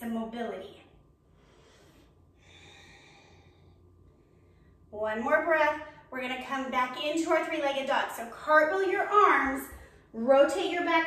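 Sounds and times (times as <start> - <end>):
low steady hum: 0.0 - 11.0
soft exhale: 1.4 - 4.8.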